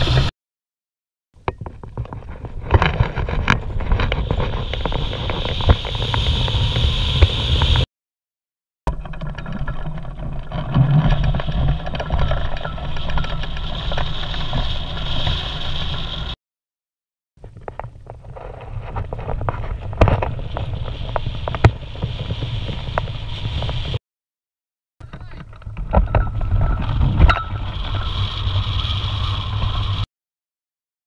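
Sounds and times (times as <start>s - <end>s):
wind rushing over microphone: 1.7s - 7.9s, 25.6s - 30.1s.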